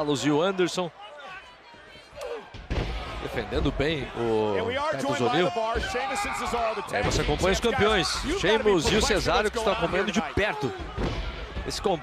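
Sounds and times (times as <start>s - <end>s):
faint arena background: 0.0s - 12.0s.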